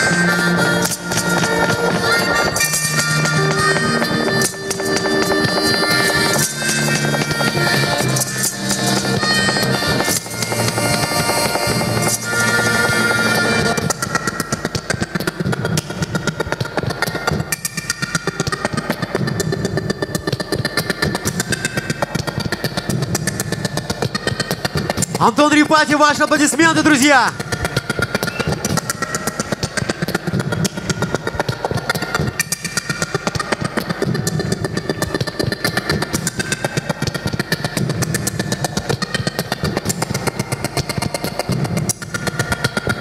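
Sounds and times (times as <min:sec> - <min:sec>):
live band music: 0:25.1 - 0:27.4.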